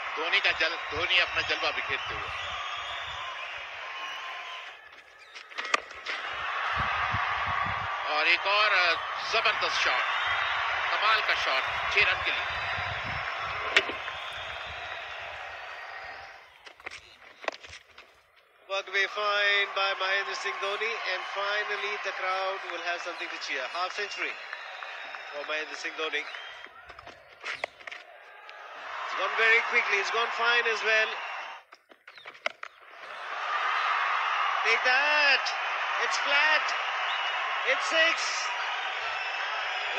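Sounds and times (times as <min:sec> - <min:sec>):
crowd and outdoor hiss: 0:00.0 - 0:04.9, 0:06.0 - 0:17.2, 0:18.7 - 0:27.0, 0:27.9 - 0:31.6, 0:32.8 - 0:39.9.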